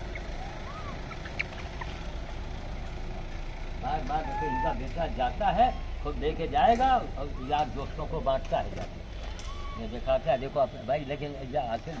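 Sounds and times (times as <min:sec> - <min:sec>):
faint rising-and-falling call: 0:00.0 - 0:02.1
low outdoor rumble: 0:00.0 - 0:12.0.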